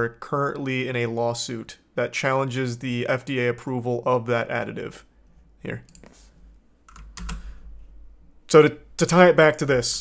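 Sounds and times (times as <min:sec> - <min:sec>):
computer keyboard keystrokes: 0:06.9 - 0:07.5.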